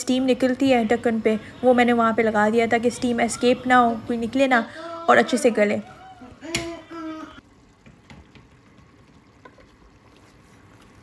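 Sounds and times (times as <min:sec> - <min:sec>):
curry simmering in a pot: 0:00.0 - 0:11.0.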